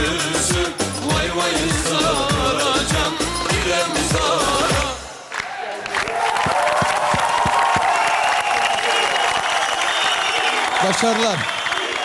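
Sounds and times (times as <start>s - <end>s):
audience applauding: 4.2s - 12.0s
shouts and whoops: 5.4s - 12.0s.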